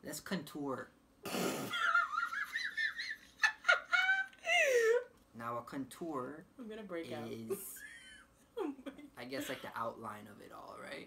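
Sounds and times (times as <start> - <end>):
woman laughing: 1.7 - 5.1, 7.5 - 9.7.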